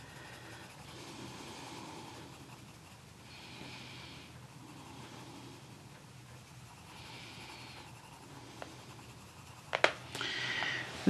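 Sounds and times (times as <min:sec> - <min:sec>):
pencil scratching stroke: 0:00.0 - 0:10.1
pencil shading on paper: 0:00.0 - 0:10.1
sharp clicks and knocks: 0:09.7 - 0:10.0.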